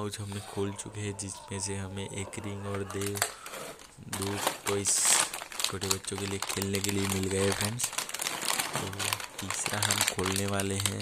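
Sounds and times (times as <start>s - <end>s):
snack pouch crinkling: 2.8s - 11.0s.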